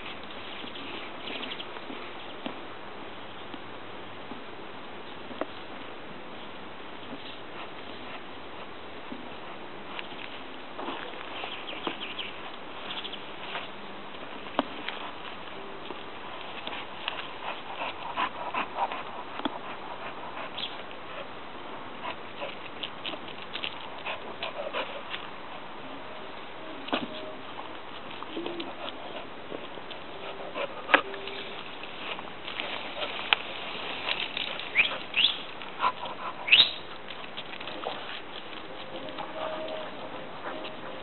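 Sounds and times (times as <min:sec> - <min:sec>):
dog sniffing and panting: 0:07.4 - 0:08.7, 0:14.6 - 0:25.8, 0:26.8 - 0:41.0
tortoise squeaking: 0:34.0 - 0:41.0.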